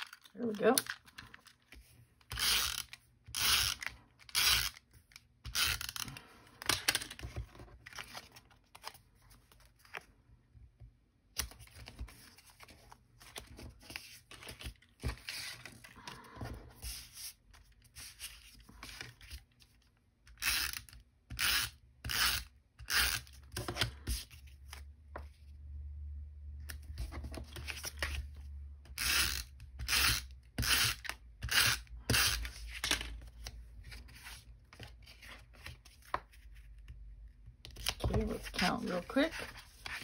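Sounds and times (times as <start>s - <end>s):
tape runner scratchy zip: 2.3s - 4.8s
paper handling: 11.4s - 19.9s.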